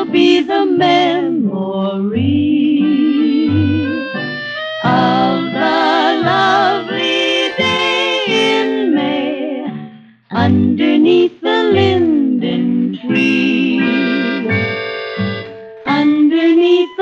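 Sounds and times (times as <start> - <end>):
vocal pop with orchestra: 4.8 - 14.8.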